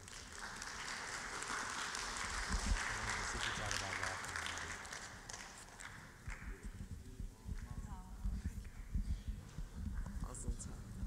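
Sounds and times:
microphone handling noise: 6.6s - 11.0s.

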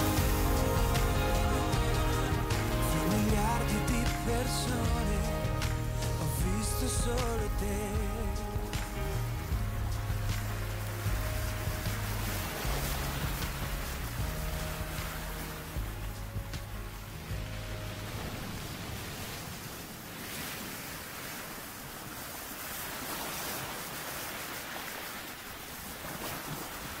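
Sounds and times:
low held music chord: 0.0s - 18.6s
sea waves rushing: 0.0s - 27.0s.

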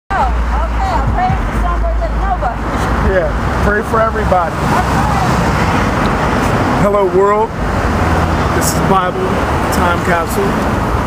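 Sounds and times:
woman talking: 0.1s - 2.7s, 4.6s - 5.6s
street traffic rumble: 0.1s - 11.0s.

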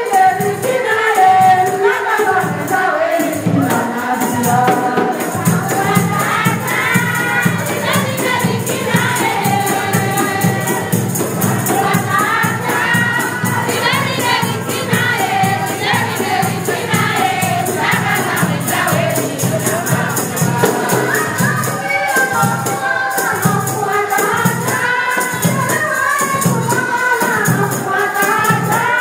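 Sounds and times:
tambourine jingling: 0.0s - 29.0s
women singing together: 0.0s - 29.0s.

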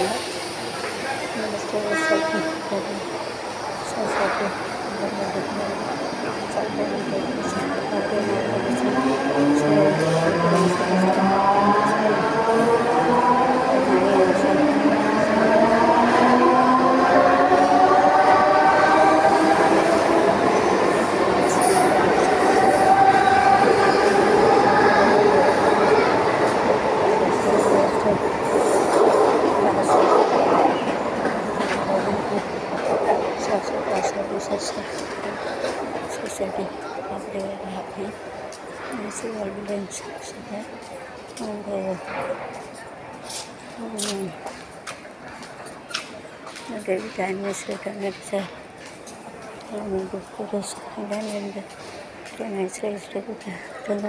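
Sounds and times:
train wheels rumbling and clattering: 0.0s - 54.0s.

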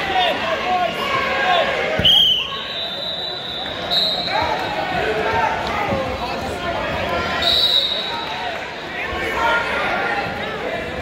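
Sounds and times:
many voices chattering: 0.0s - 11.0s
whistle blast: 2.0s - 4.5s, 7.4s - 8.2s.

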